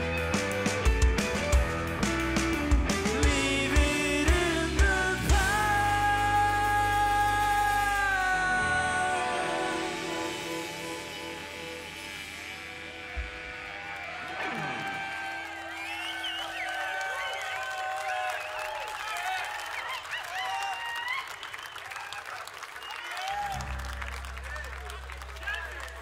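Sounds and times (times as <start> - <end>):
rock band sustained chord: 0.0 - 16.1, 23.5 - 26.0
crowd cheering and applauding: 0.0 - 26.0.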